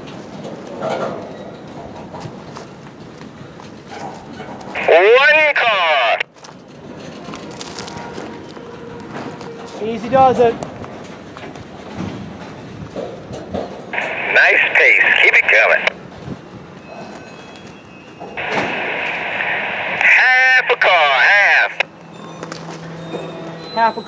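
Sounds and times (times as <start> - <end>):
radio squelch hiss: 4.8 - 6.2, 14.0 - 15.9, 18.4 - 21.8
narrow-band radio voice: 4.8 - 6.3, 14.0 - 15.9, 18.4 - 21.8.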